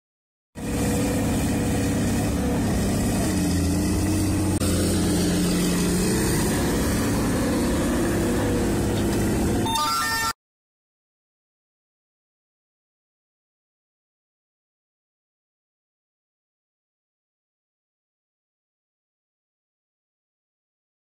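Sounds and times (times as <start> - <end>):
diesel earthmoving machinery running: 0.6 - 10.3
rising tones: 2.4 - 10.3.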